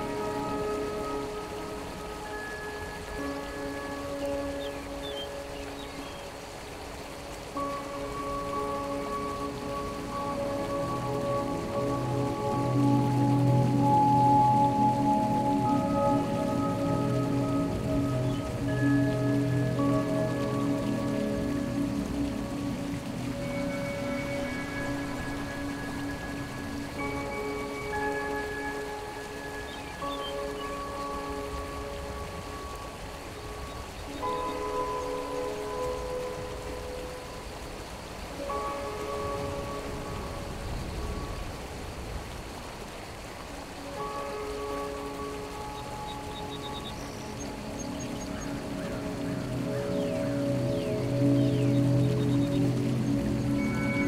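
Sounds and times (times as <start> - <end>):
calm music with held chords: 0.0 - 54.0
mountain stream rushing: 0.0 - 54.0.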